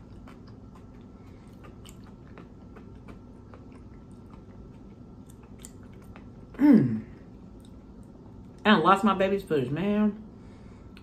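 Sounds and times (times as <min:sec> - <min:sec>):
person chewing food: 0:00.0 - 0:08.6
low steady hum: 0:00.0 - 0:11.0.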